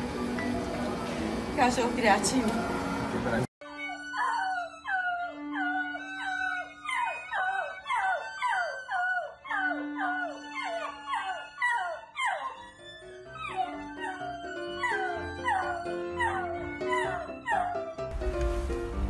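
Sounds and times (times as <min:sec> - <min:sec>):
puppy howling: 0:00.4 - 0:01.1, 0:03.7 - 0:18.1
background music: 0:09.5 - 0:19.0.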